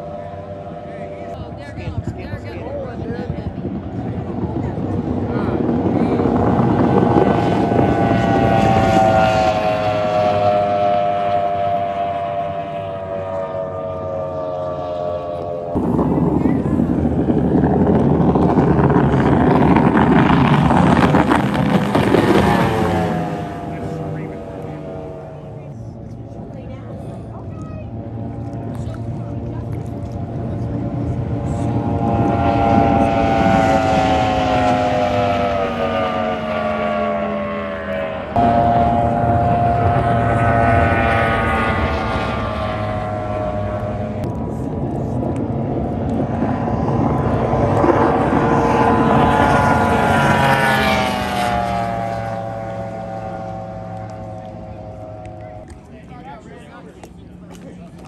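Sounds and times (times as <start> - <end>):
race boat engines passing: 0.0 - 58.0.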